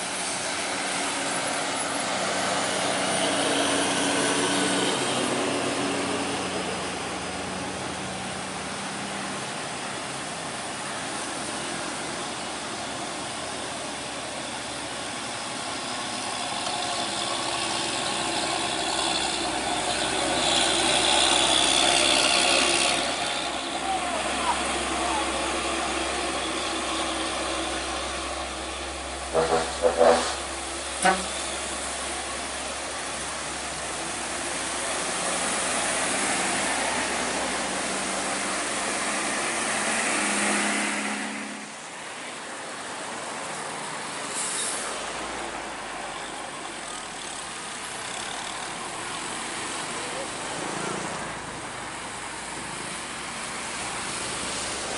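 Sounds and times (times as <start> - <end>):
tyre hiss on wet road: 0.0 - 46.0, 47.2 - 54.9
truck and car engines: 0.0 - 54.9
short horn blasts: 29.3 - 31.6.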